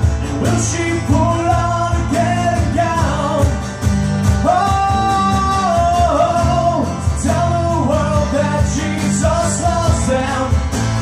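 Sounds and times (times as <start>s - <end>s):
bass guitar: 0.0s - 11.0s
cajon beat: 0.0s - 11.0s
strummed guitars: 0.0s - 11.0s.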